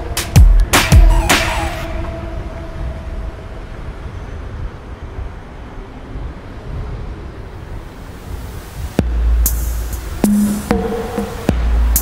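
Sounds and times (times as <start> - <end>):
street background hiss: 0.0 - 12.0
wind buffeting microphone: 0.0 - 12.0.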